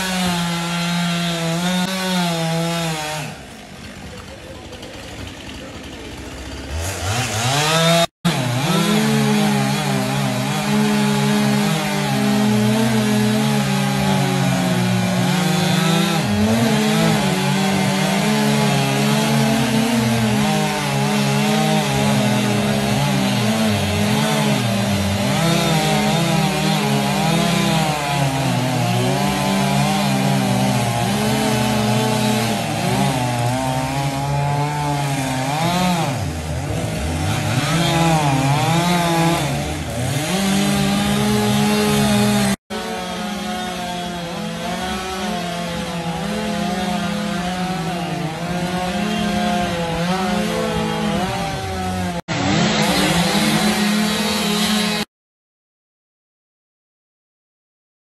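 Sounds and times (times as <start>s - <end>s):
chainsaw cutting wood: 0.0s - 55.1s.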